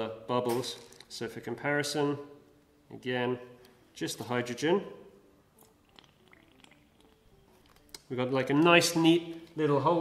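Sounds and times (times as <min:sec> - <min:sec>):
wet squelches from syringe: 0:05.6 - 0:08.2.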